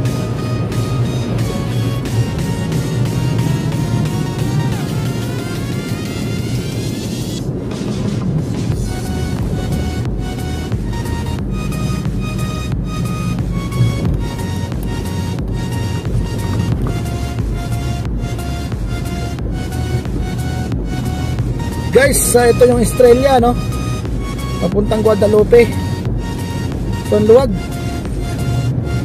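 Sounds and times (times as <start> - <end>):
electronic music with beat: 0.0 - 29.0
rising sweep: 0.0 - 29.0.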